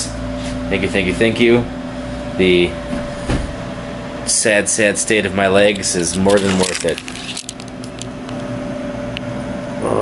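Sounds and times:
steady mechanical hum: 0.0s - 10.0s.

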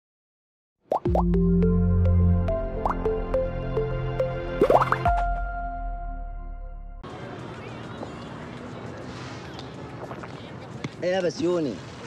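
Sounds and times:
plucked synth notes: 0.9s - 7.0s
deep bass note: 1.1s - 7.0s.

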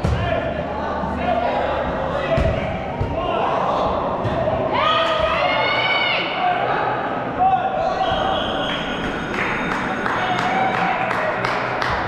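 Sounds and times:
dodgeballs hitting and bouncing: 0.0s - 0.5s, 2.2s - 3.4s.

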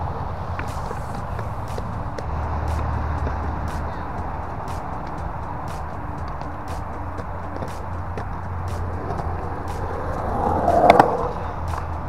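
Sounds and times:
skateboard wheels rolling on concrete: 0.0s - 12.0s
skateboard clack: 0.1s - 12.0s.

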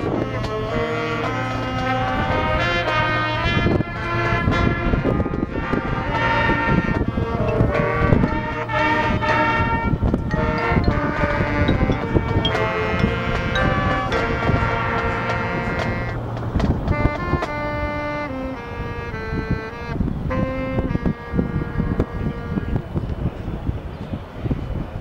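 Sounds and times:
brass chords: 0.0s - 22.9s.

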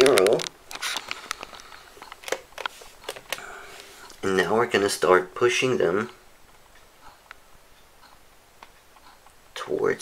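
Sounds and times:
plastic devices clicking and tapping: 0.0s - 3.5s.

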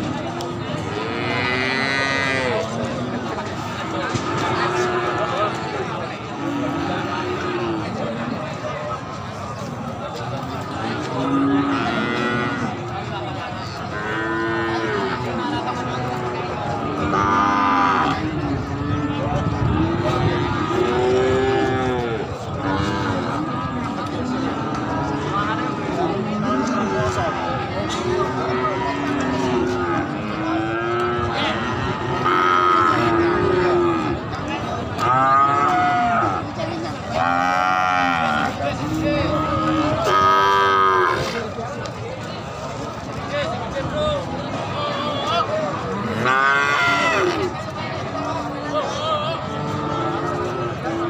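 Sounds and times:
steady background noise: 0.0s - 51.0s.

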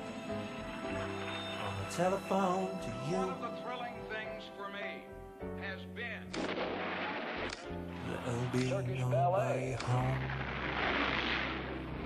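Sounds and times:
gunfire from television: 6.4s - 7.7s.

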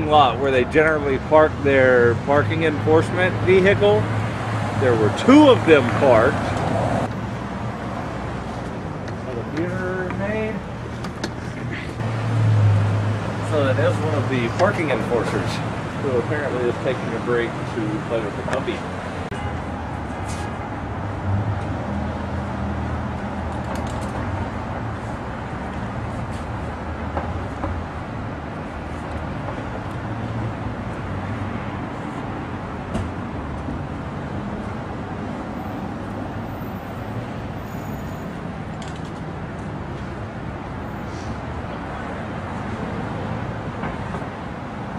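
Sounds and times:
low hum of street traffic: 0.0s - 44.9s
vehicle engines running: 0.0s - 44.9s.

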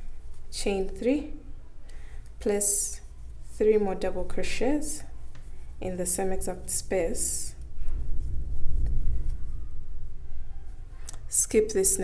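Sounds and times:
low rumble: 5.8s - 10.8s.

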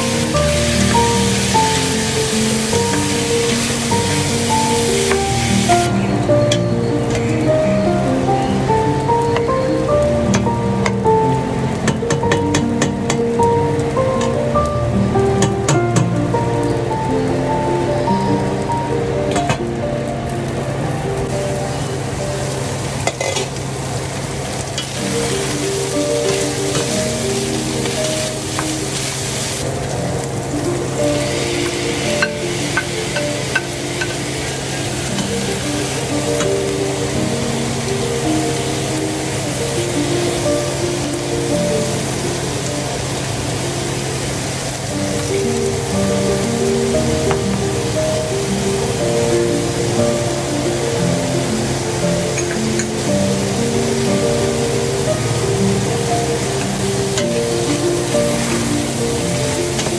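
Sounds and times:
meat and onions sizzling: 0.0s - 59.9s
soft background music: 0.0s - 59.9s.

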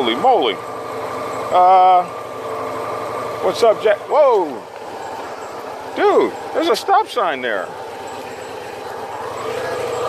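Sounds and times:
vehicle engine drone: 0.0s - 10.0s.

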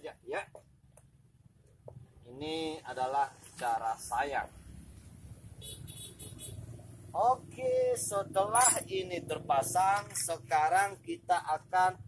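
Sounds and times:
motor vehicle rumble: 0.0s - 12.0s.

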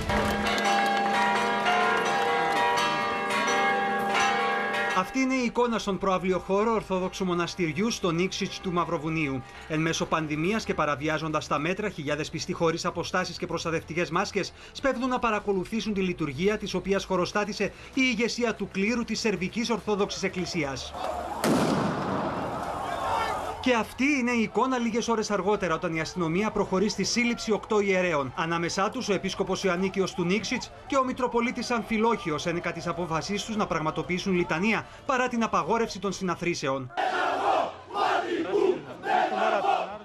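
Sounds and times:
church bells pealing: 0.0s - 5.9s
grenade bang: 21.4s - 23.1s
echoing rumble: 21.4s - 23.6s.

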